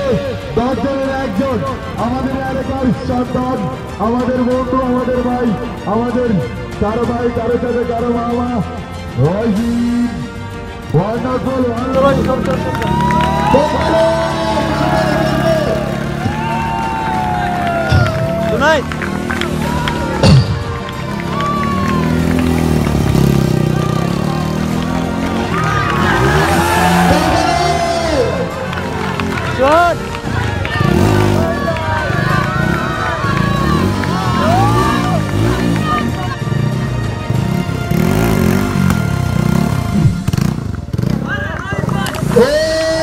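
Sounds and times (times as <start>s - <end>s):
music playing: 0.0s - 43.0s
crowd voices: 11.0s - 43.0s
motorcycle engine revving high: 11.8s - 43.0s.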